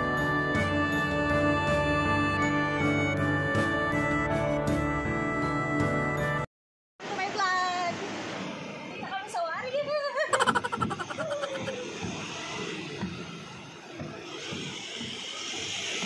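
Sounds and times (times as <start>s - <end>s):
person making sliding vocal sounds: 10.4s - 11.9s.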